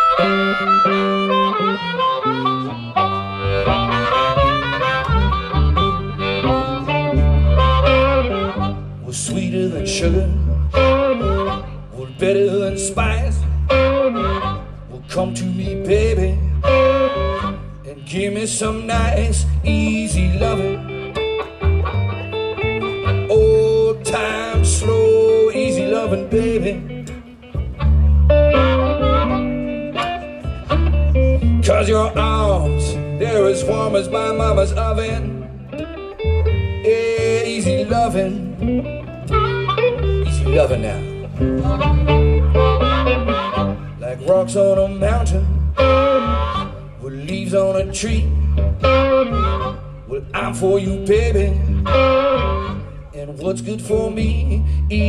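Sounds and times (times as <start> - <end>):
electric guitar: 0.0 - 55.0
harmonica lead line: 0.0 - 55.0
upright double bass: 0.0 - 55.0.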